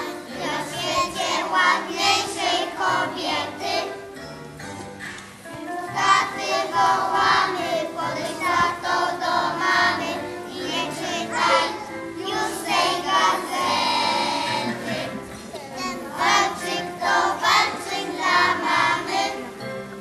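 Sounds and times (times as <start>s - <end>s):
children singing: 0.0s - 4.0s, 5.9s - 19.7s
instrumental accompaniment: 0.0s - 20.0s.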